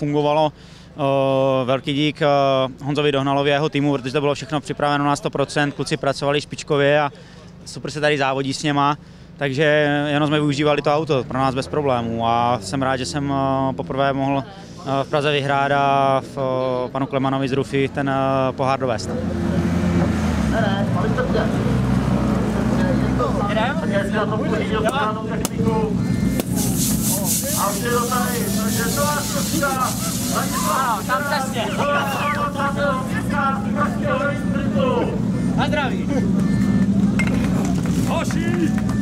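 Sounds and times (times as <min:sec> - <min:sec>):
people talking: 0:00.0 - 0:19.4, 0:20.5 - 0:39.0
crowd voices: 0:14.3 - 0:39.0
car engine idling: 0:20.6 - 0:39.0.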